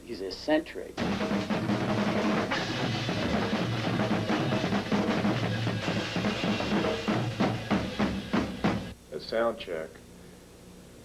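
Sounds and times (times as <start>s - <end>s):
band music: 1.0s - 9.0s
loud drum kit hits: 1.0s - 9.0s.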